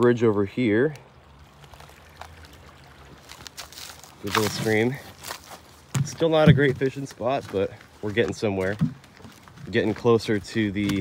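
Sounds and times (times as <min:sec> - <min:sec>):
stream trickling faintly: 0:00.0 - 0:11.0.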